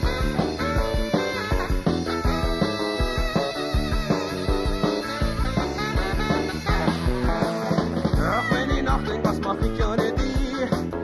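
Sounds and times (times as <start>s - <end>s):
rock band playing instrumental: 0.0s - 11.0s.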